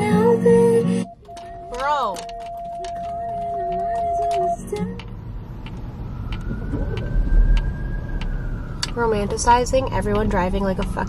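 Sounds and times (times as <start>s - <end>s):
car road and engine rumble: 0.0s - 11.0s.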